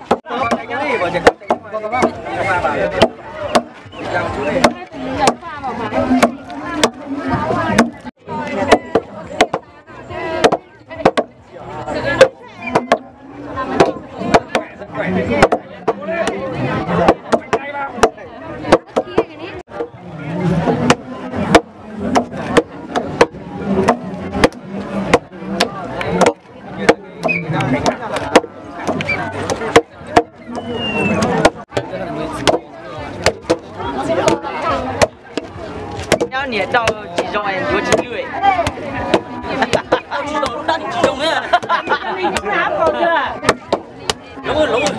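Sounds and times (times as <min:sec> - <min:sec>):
wooden mallets pounding rice: 0:00.0 - 0:03.9, 0:04.5 - 0:09.6, 0:10.3 - 0:11.3, 0:12.2 - 0:13.1, 0:13.8 - 0:20.0, 0:20.6 - 0:44.2
crowd chatter: 0:00.0 - 0:44.9
voices of onlookers: 0:00.0 - 0:44.9.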